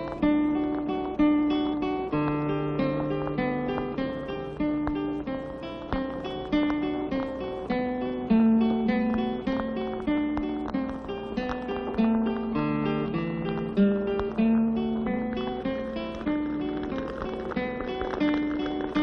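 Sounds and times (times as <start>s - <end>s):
acoustic guitar plucked notes: 0.0s - 19.0s.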